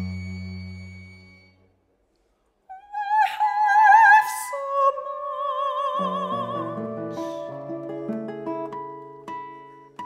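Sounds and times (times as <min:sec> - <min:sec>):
high held tone: 0:00.0 - 0:01.8
woman singing with vibrato: 0:02.7 - 0:07.8.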